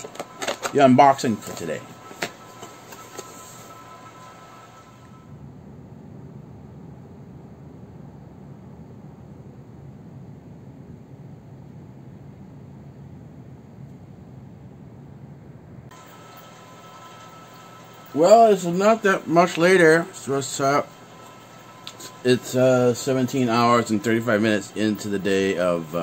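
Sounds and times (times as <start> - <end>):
low outdoor rumble: 0.0 - 26.0.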